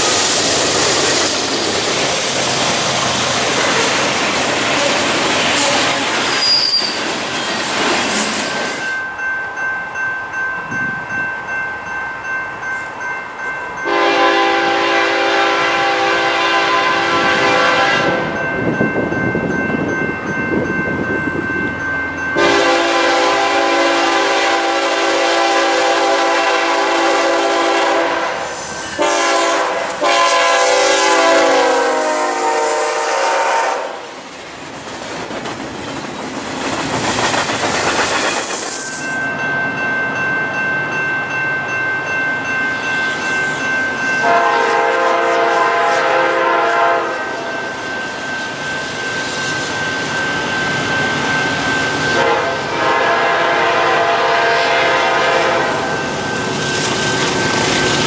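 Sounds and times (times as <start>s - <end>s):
freight train cars rumbling: 0.0s - 58.0s
locomotive air horn blasts: 4.7s - 6.8s, 13.9s - 18.4s, 22.4s - 34.1s, 44.2s - 47.5s, 52.2s - 55.9s.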